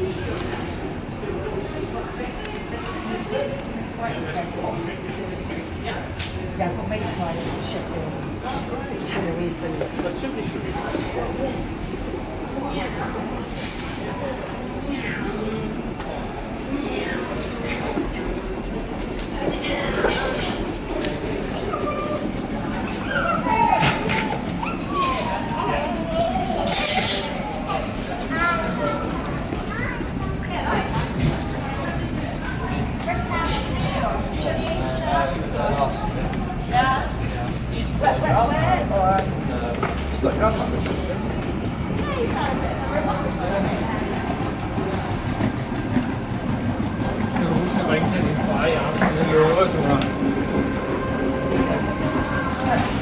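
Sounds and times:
people talking: 0.0s - 53.0s.

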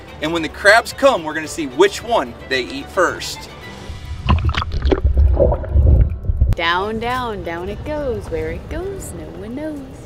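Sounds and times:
water splashing and gurgling: 3.9s - 6.6s.

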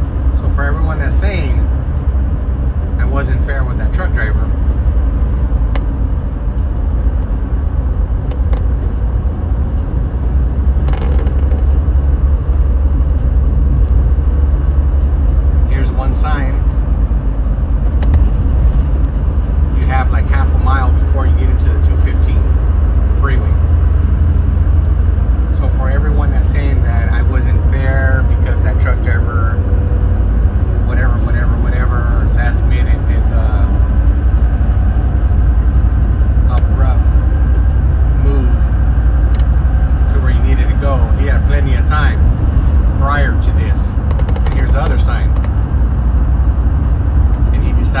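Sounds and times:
car road and engine rumble: 0.0s - 48.0s
person talking: 15.6s - 16.6s, 36.5s - 37.0s, 43.0s - 45.5s.

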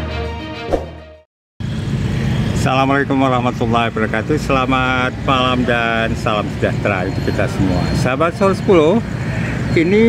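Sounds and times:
street traffic noise: 1.6s - 10.0s.

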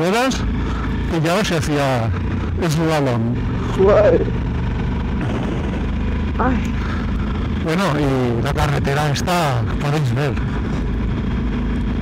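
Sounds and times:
motorcycle engine running: 0.0s - 12.0s
wind and road noise: 0.0s - 12.0s
person exclaiming wow: 3.8s - 4.3s.

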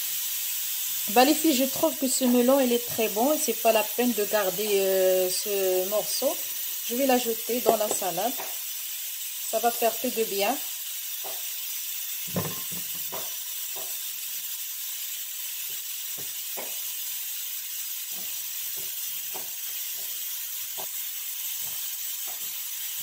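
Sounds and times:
steady hiss: 0.0s - 23.0s.

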